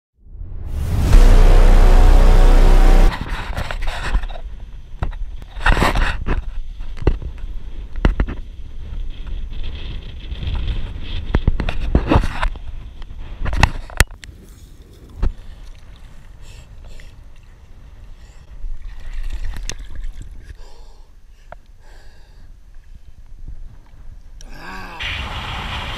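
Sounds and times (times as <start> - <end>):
loud intro music: 0.2 - 3.3
low rumble: 0.2 - 3.6.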